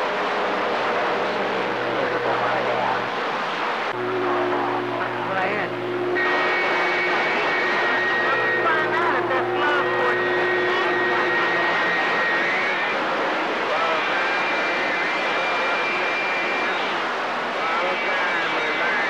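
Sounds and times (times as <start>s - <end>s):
faint garbled radio voices: 0.0s - 19.0s
radio static: 0.6s - 19.0s.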